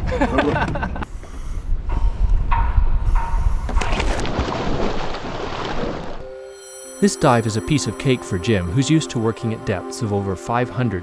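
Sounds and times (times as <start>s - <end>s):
wind rumbling on microphone: 0.0s - 6.2s.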